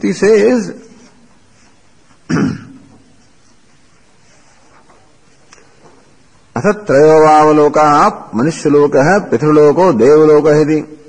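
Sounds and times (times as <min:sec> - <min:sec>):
man coughing: 0:02.3 - 0:02.9.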